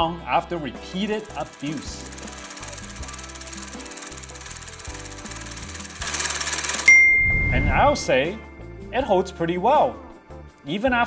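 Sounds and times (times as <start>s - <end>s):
rapid mechanical ticking: 0.9s - 7.0s
bright ding: 6.9s - 8.6s.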